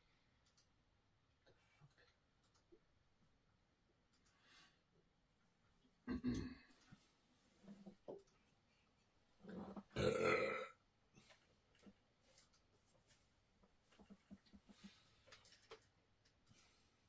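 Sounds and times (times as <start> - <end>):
man burping: 6.1 - 6.7, 10.0 - 10.8.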